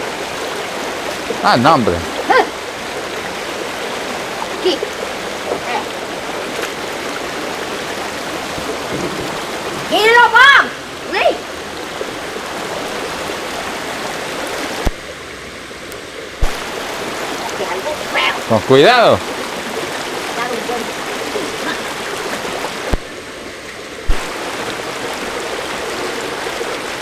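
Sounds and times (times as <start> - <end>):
river rushing over stones: 0.0 - 27.0
person calling out: 1.4 - 2.6.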